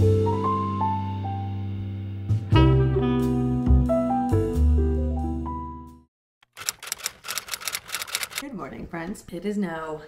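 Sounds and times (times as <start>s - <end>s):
rapid sharp clicks: 6.4s - 8.4s
woman speaking: 8.4s - 10.0s.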